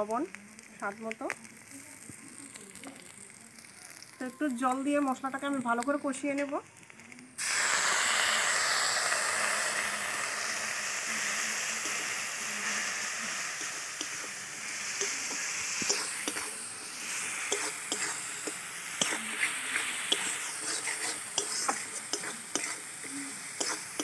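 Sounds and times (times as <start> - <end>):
loud sizzle in hot oil: 0.0 - 24.0
metal spatula scraping a pan: 14.8 - 24.0.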